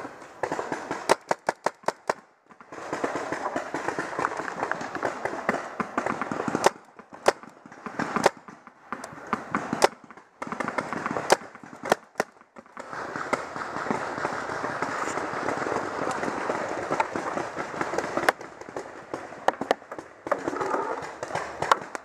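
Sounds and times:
paintball impacts: 0:00.0 - 0:22.0
paintball markers firing: 0:00.0 - 0:22.0.

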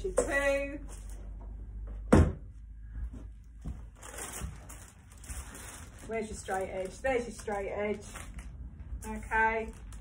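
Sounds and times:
crinkly plastic rustle: 0:03.6 - 0:10.0.

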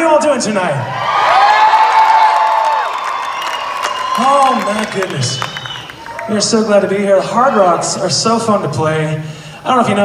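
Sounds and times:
audience cheering and whooping: 0:00.8 - 0:07.9
people clapping: 0:01.3 - 0:06.5.

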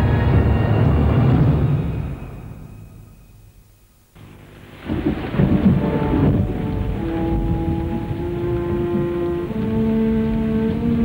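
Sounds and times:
low thunder rumble: 0:00.0 - 0:03.8, 0:04.7 - 0:11.0
held music notes: 0:00.7 - 0:11.0
rain-like hiss: 0:00.7 - 0:11.0.

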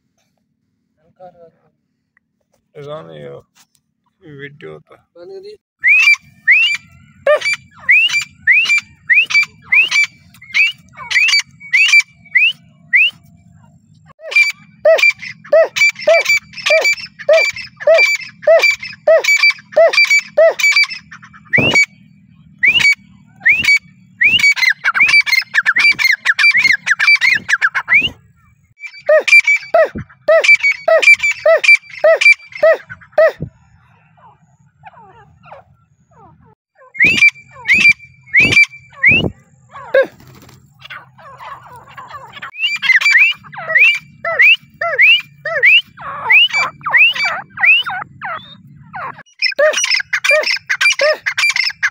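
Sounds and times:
bird calling sharp rising notes: 0:05.8 - 0:51.9
rapid chattering bird notes: 0:06.0 - 0:13.7, 0:14.3 - 0:33.5, 0:37.0 - 0:51.9.

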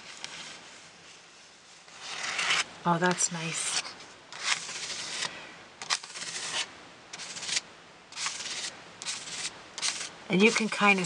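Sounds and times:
spatula scraping on cardstock: 0:01.8 - 0:02.7, 0:03.5 - 0:07.6, 0:08.2 - 0:11.0.

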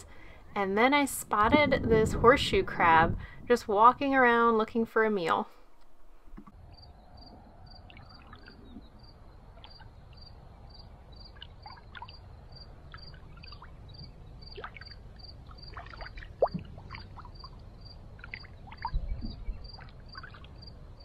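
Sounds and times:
insect chirping: 0:06.5 - 0:21.0
water ripples lapping: 0:07.7 - 0:10.4, 0:11.0 - 0:21.0
water splash: 0:14.5 - 0:17.6.

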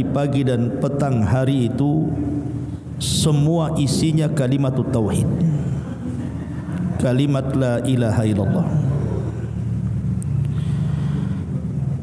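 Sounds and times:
steady low hum: 0:00.0 - 0:12.0.

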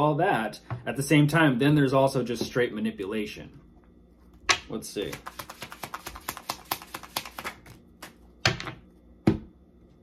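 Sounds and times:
cards being shuffled: 0:05.0 - 0:08.2.

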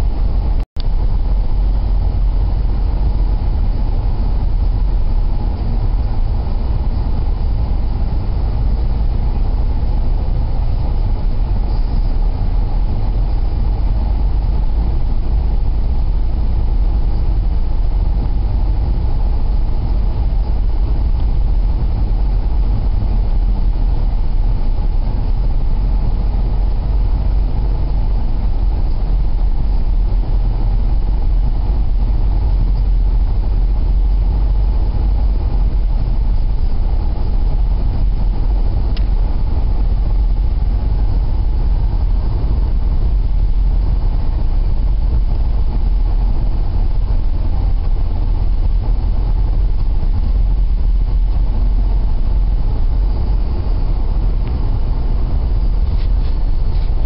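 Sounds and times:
car driving on snowy road: 0:00.0 - 0:57.0.

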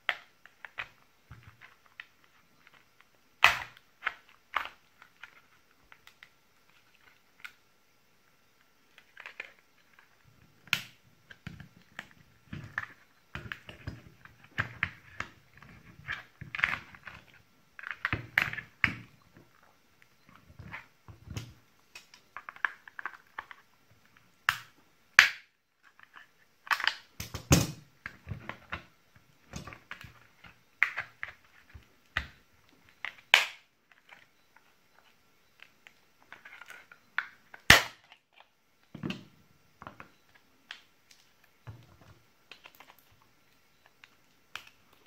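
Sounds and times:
sharp plastic cracks and snaps: 0:03.4 - 0:06.3, 0:10.6 - 0:12.1, 0:24.4 - 0:25.5, 0:26.6 - 0:28.6, 0:33.0 - 0:33.7, 0:36.6 - 0:38.5
plastic scraping and creaking: 0:35.9 - 0:40.4.

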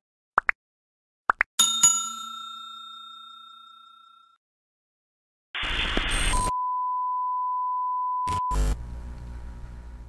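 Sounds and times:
bell-like ding: 0:01.6 - 0:04.4.

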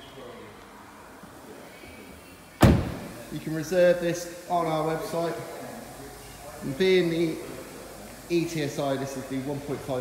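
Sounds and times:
car door shutting thud: 0:02.6 - 0:03.2.

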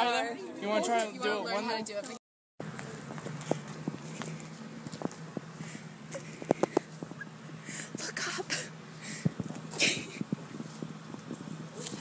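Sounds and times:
footsteps on hard ground: 0:02.0 - 0:07.6, 0:09.2 - 0:12.0
steady low hum: 0:02.6 - 0:12.0.

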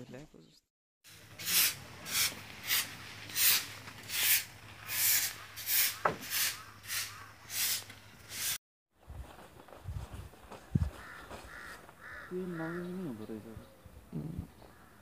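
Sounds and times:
straw broom sweeping dusty ground: 0:01.1 - 0:08.6.

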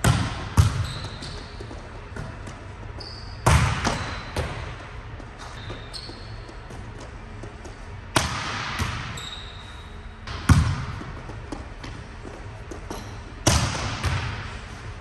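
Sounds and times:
ball bouncing: 0:00.0 - 0:09.2, 0:10.2 - 0:14.5
volleyball smacking on court floor: 0:03.4 - 0:04.7, 0:08.1 - 0:09.2, 0:13.4 - 0:14.4.

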